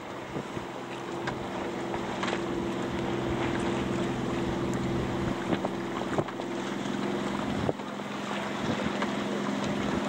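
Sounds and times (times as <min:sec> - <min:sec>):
boat engine hum: 0:00.0 - 0:10.0
water noise: 0:00.0 - 0:10.0
wind: 0:00.0 - 0:10.0.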